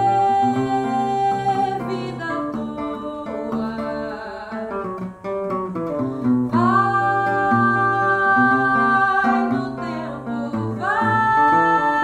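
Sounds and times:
woman singing: 0.0s - 5.2s, 5.8s - 12.0s
acoustic guitar plucked notes: 0.0s - 12.0s.

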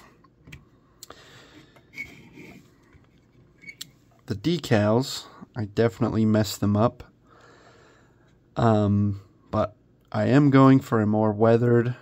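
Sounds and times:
soft rubbing of plastic model: 1.8s - 3.8s.

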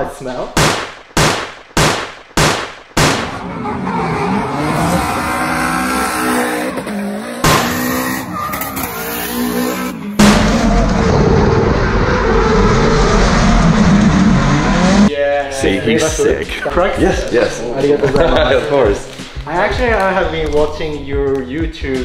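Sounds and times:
car engine revving: 3.4s - 15.1s
tyre squeal: 7.8s - 9.9s.

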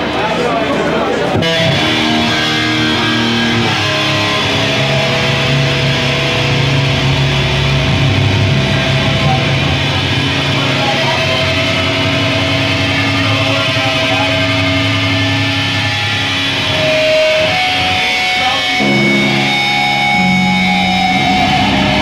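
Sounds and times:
live heavy band playing: 0.0s - 22.0s.

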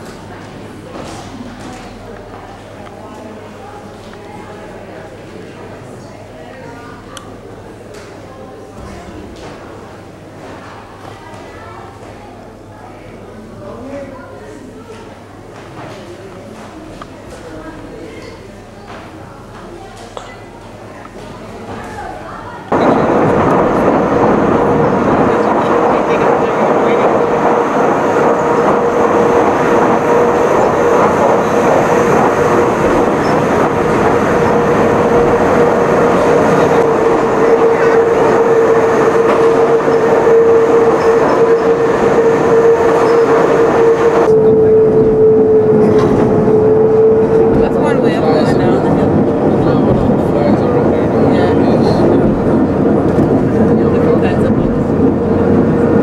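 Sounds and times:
railcar rumbling: 21.6s - 56.0s.

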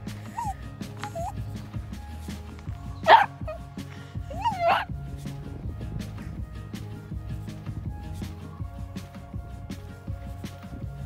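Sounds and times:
background music: 0.0s - 11.0s
small dog yipping and barking: 0.3s - 1.4s, 3.0s - 3.6s, 4.3s - 4.9s.

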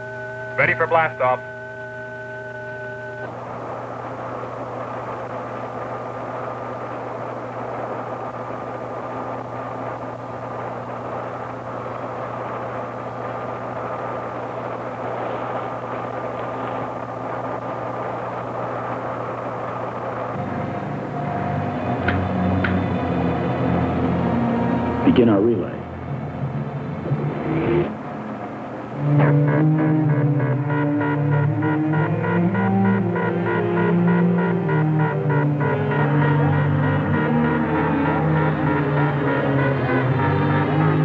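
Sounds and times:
electronic spacecraft hum: 0.0s - 41.0s
noisy rush: 3.2s - 41.0s
throbbing electronic pulse: 25.8s - 41.0s.

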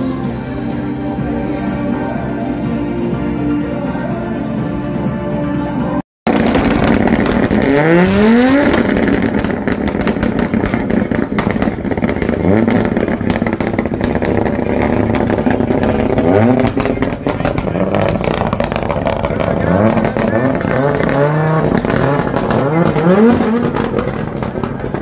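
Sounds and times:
rally car engine revving: 6.3s - 25.0s.

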